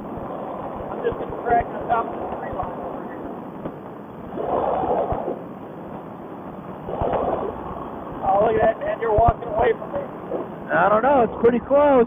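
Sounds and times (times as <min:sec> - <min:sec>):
muffled wind: 0:00.0 - 0:12.0.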